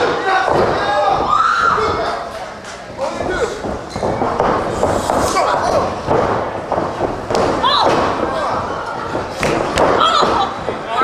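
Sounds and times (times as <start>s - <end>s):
wrestlers thudding on ring: 0.0s - 2.1s, 3.1s - 11.0s.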